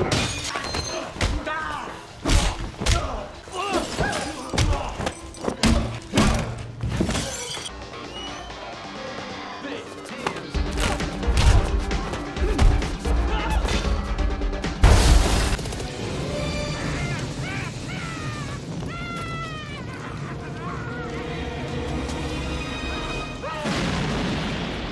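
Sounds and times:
film music score: 0:00.0 - 0:24.5.

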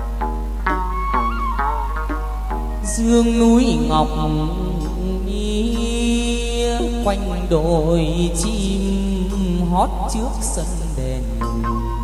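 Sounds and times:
moon lute: 0:00.0 - 0:12.0
person singing melismatic vocal: 0:02.2 - 0:12.0.

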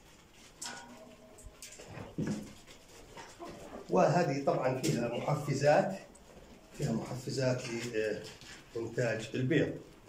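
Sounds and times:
hens clucking: 0:03.0 - 0:05.8.

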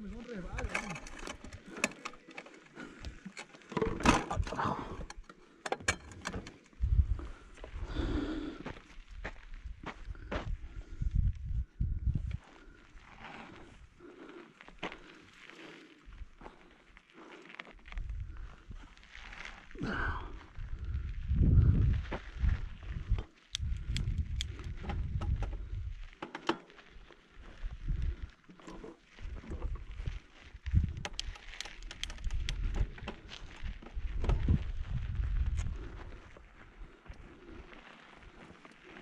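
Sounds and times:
wind buffeting microphone: 0:06.8 - 0:08.1, 0:09.6 - 0:12.4, 0:20.5 - 0:26.1, 0:29.2 - 0:36.4.

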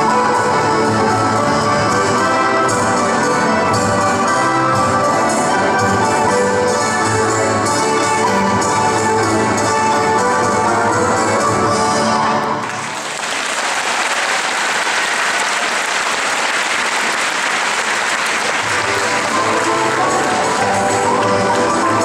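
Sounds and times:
music playing: 0:00.0 - 0:22.0
audience applause: 0:12.6 - 0:22.0.

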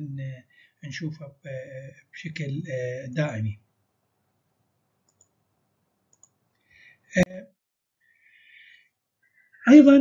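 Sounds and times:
faint short clicks: 0:05.1 - 0:05.4, 0:06.1 - 0:06.4.

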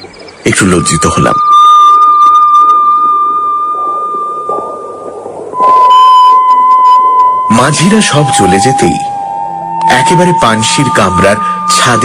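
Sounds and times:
high whistle-like tone: 0:01.1 - 0:12.0
lower tone: 0:01.2 - 0:12.0.

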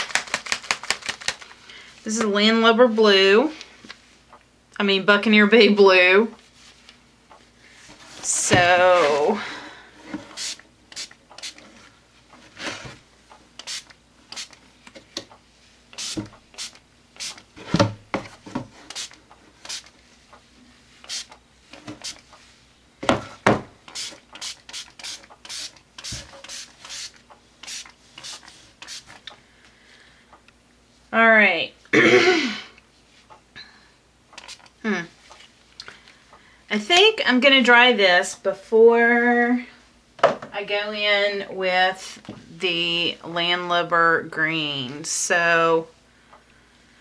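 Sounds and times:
spray bottle squirts: 0:10.3 - 0:11.6, 0:13.6 - 0:14.6, 0:16.0 - 0:17.5, 0:18.9 - 0:19.9, 0:21.0 - 0:21.4, 0:23.9 - 0:29.2.

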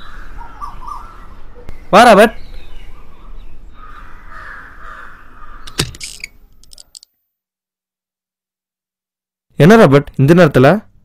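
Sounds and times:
crow cawing: 0:00.0 - 0:01.2, 0:03.7 - 0:05.8.

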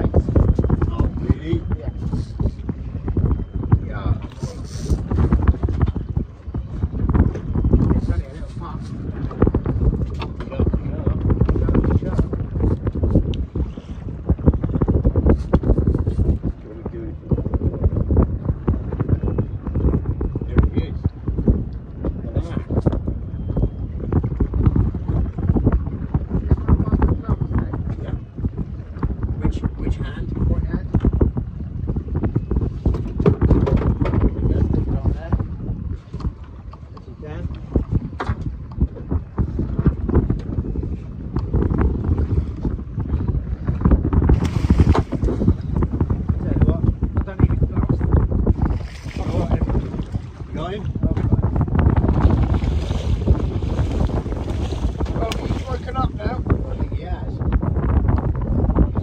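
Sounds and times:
sea washing around hull: 0:00.0 - 0:59.0
wind rumbling on microphone: 0:00.0 - 0:59.0.

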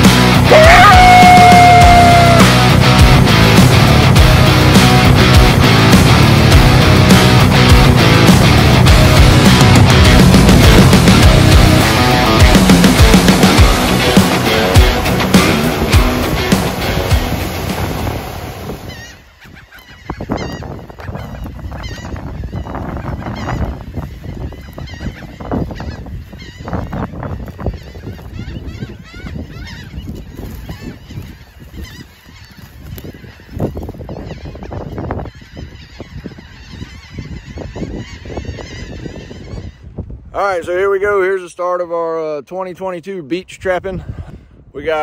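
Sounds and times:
flock of birds calling: 0:00.0 - 0:02.7, 0:08.8 - 0:40.2
loud music: 0:00.0 - 0:18.9.

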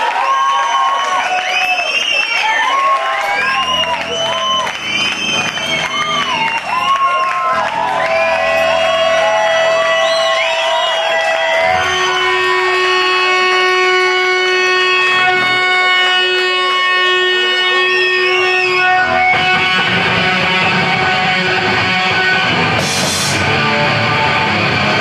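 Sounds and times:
band with distorted guitar: 0:01.5 - 0:25.0
electric guitar feedback: 0:02.6 - 0:25.0.

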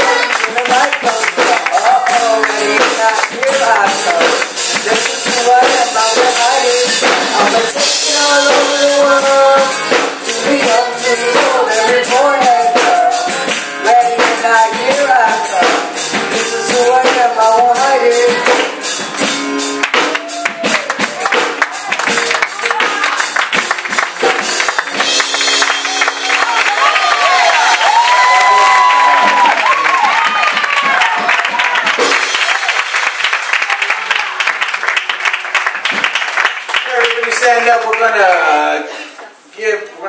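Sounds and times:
girl singing into a microphone: 0:00.0 - 0:02.1
congregation applauding and cheering: 0:00.0 - 0:06.9, 0:18.4 - 0:38.8
acoustic guitar: 0:00.0 - 0:29.6
rhythmic percussion: 0:00.0 - 0:38.8.

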